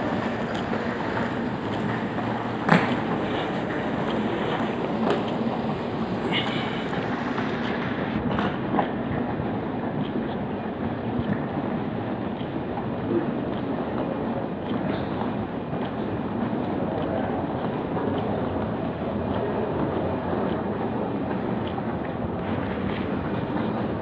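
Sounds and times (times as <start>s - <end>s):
terminal corridor rumbling: 0.0s - 24.0s.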